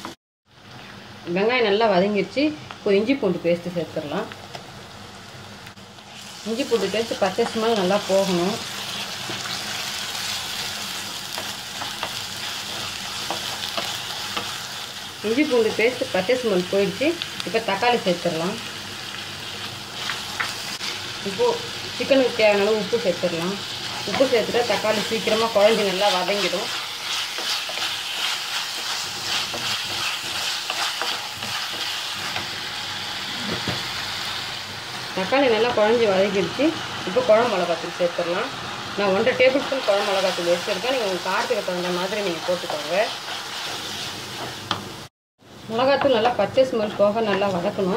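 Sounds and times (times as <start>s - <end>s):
onions sizzling in pot: 0.0s - 47.9s.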